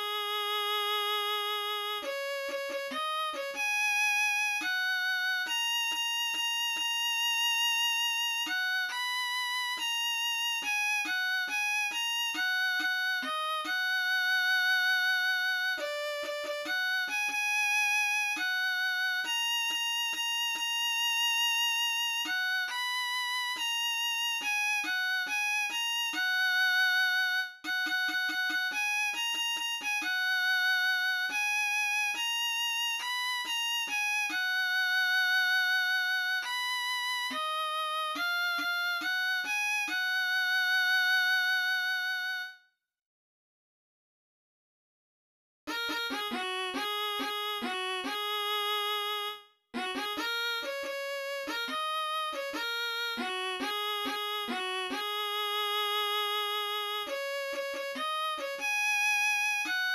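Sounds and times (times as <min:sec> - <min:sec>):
solo violin melody: 0:00.0 - 0:42.6, 0:45.7 - 0:59.9.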